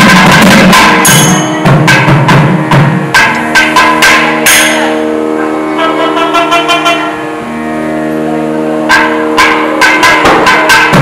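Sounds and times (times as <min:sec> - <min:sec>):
drum strokes: 0:00.0 - 0:07.1, 0:08.8 - 0:11.0
wind ensemble holding a note: 0:04.0 - 0:10.7.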